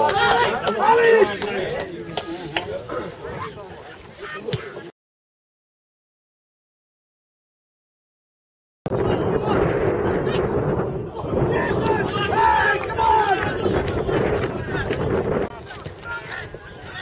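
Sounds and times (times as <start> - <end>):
players shouting: 0.0 - 4.9, 9.0 - 17.0
loud rumbling noise: 8.9 - 15.6.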